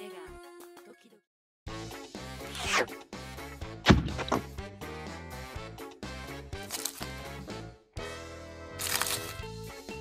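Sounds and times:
cartoon background music: 0.0s - 10.0s
sharp swipe: 2.4s - 3.0s, 3.9s - 4.5s
falling swish: 2.5s - 3.0s.

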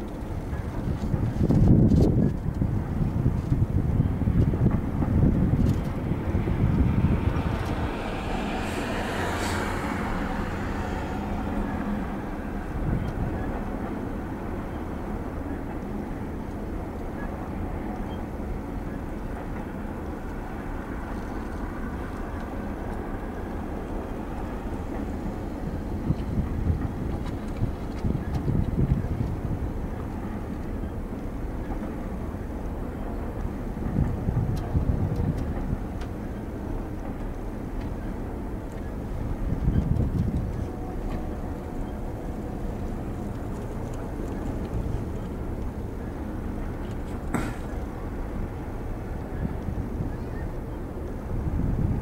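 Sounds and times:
train wheels rumbling on rail: 0.0s - 52.0s
wind buffeting microphone: 0.0s - 52.0s.

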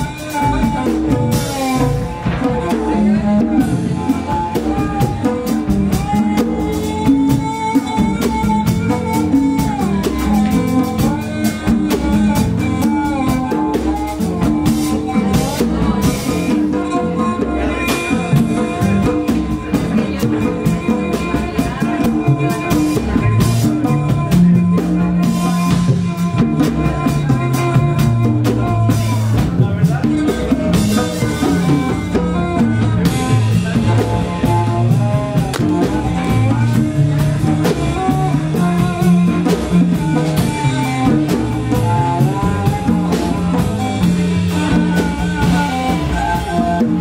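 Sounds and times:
tabla and drum kit percussion: 0.0s - 47.0s.

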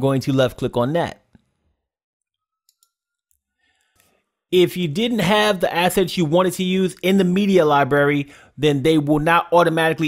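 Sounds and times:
computer mouse clicks: 2.7s - 3.4s.

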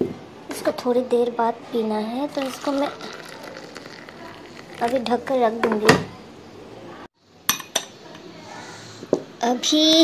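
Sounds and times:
glass tumbler clinking: 2.3s - 5.2s.

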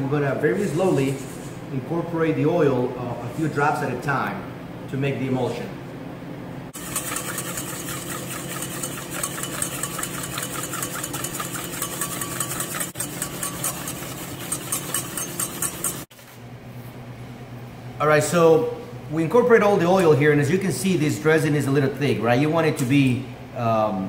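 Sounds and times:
steady low hum: 0.0s - 24.0s
whisk beating in metal bowl: 6.8s - 16.2s.

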